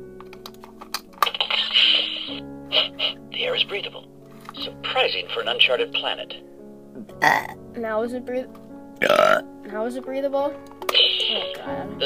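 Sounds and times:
steady music: 0.0s - 12.0s.

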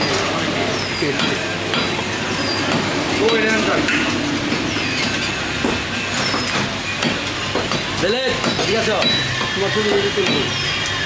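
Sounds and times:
cleaver chopping on wooden block: 7.0s - 10.5s.

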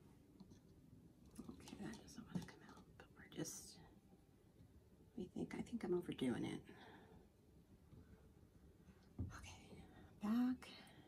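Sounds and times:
woman whispering: 1.4s - 3.9s, 9.2s - 11.0s.

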